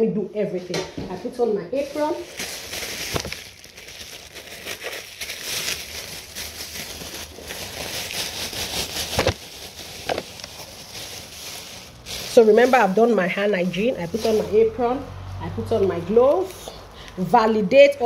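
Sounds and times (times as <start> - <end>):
plastic apron crinkling: 1.7 - 16.6.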